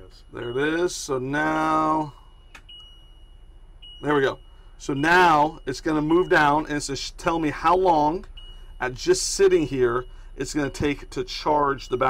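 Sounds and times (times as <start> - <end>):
high-pitched warning beep: 0.0 - 12.0.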